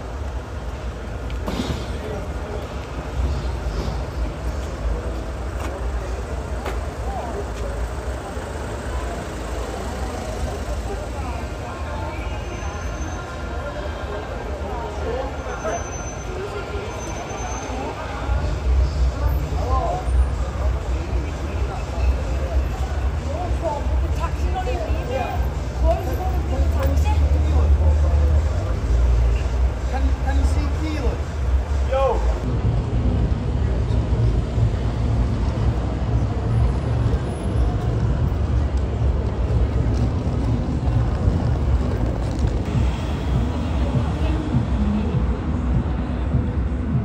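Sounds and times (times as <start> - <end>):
road traffic rumble: 0.0 - 47.0
indistinct voices: 1.5 - 47.0
people chatting and calling out: 1.9 - 32.8, 33.4 - 47.0.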